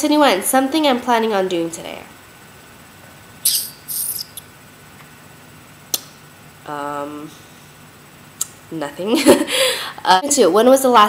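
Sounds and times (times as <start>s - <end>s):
hissy chirp-like mouth sounds: 3.4s - 4.5s.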